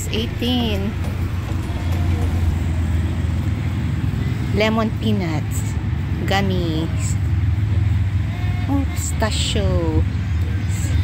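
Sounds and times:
steady low rumble: 0.0s - 8.4s.

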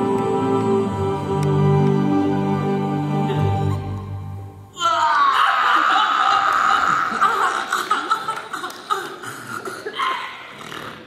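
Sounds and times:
audience laughing: 5.8s - 9.2s.

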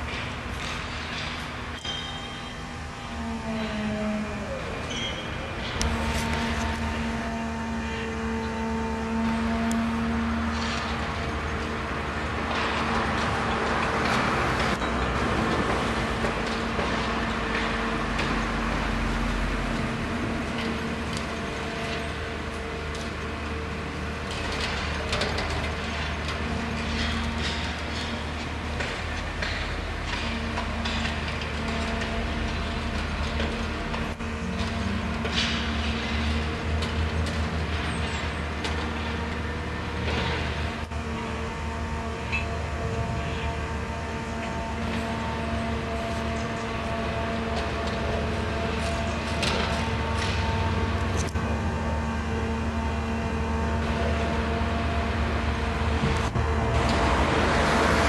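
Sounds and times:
steady whine: 0.0s - 13.8s, 38.7s - 58.0s
low engine drone: 0.0s - 58.0s
steady machinery hum: 0.0s - 58.0s.

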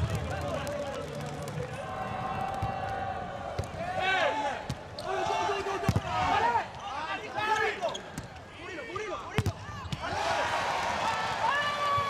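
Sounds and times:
shoes squeaking on court floor: 6.7s - 9.1s.

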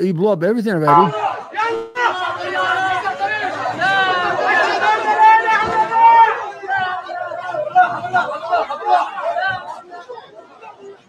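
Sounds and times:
person talking: 0.0s - 1.1s.

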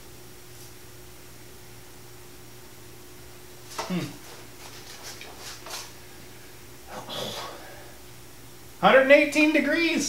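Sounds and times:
low electrical hum: 0.0s - 10.0s
faint rustles and light clicks: 3.6s - 6.0s.

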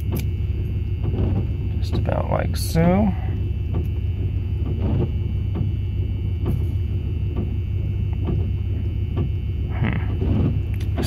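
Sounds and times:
van engine idling: 0.0s - 11.0s.

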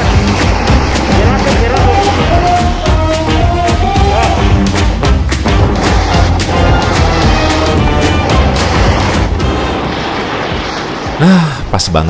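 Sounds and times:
wind buffeting microphone: 0.0s - 4.3s
snowboard sliding over snow: 0.0s - 11.3s.

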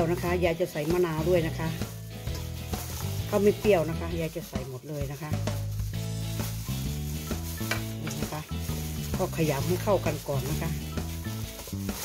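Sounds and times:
plastic glove crinkling: 0.0s - 12.0s
wet rustling stir of food: 0.0s - 12.0s.

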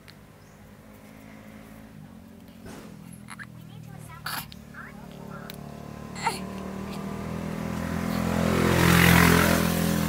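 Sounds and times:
engine passing by: 0.2s - 10.0s.

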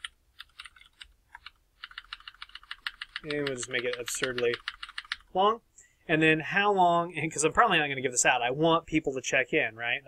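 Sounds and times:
computer keyboard typing: 0.0s - 5.3s.

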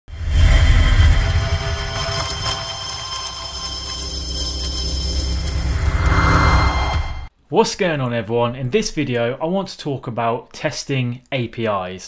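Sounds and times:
intro music with bass drone: 0.1s - 7.3s
mechanical clicks and ticks: 1.9s - 6.9s.

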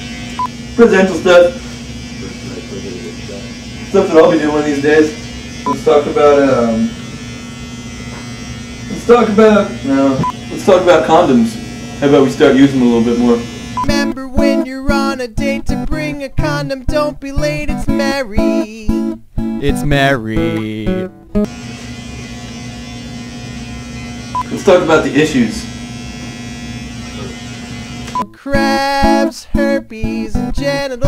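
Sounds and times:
electric hair clippers buzzing: 0.0s - 15.2s, 21.4s - 29.2s
guitar note: 13.8s - 21.5s.

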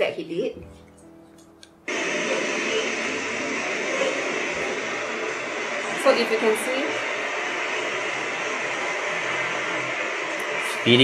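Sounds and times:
faint background music: 0.0s - 1.9s.

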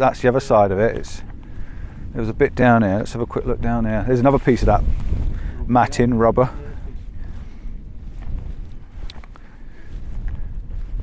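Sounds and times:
faint footsteps through grass: 0.0s - 11.0s
wind buffeting microphone: 0.0s - 11.0s.

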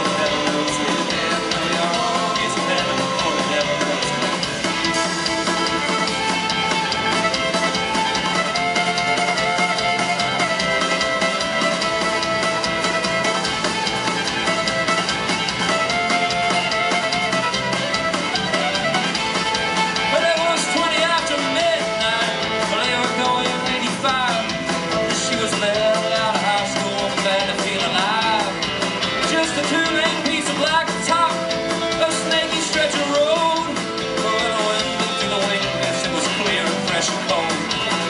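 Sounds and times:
country rock band playing: 0.0s - 38.0s
fiddle lead lines: 0.0s - 38.0s.

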